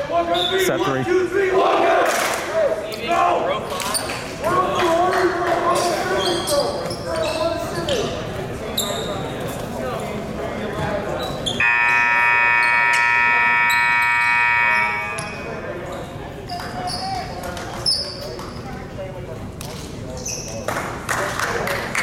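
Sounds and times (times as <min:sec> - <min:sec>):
voices: 0:00.0 - 0:22.0
scoreboard horn blast: 0:11.6 - 0:15.4.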